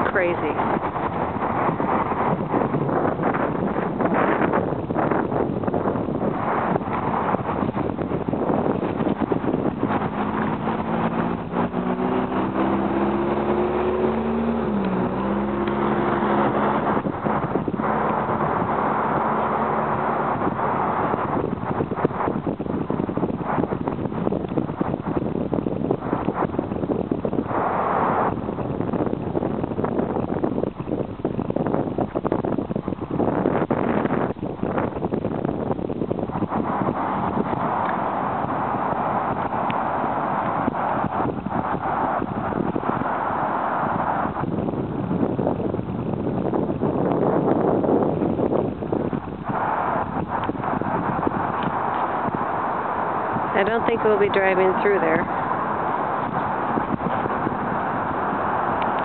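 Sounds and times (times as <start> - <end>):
vehicle engine: 0.0 - 59.0
wind buffeting microphone: 0.0 - 59.0.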